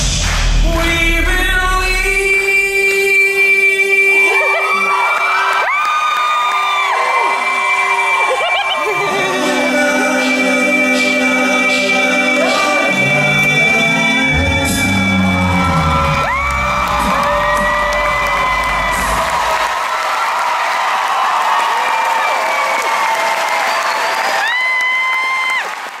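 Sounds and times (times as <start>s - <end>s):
deep bass voice: 0.0s - 4.4s, 8.9s - 19.7s
audience cheering and applauding: 1.8s - 26.0s
a cappella group singing a chord: 8.8s - 18.2s.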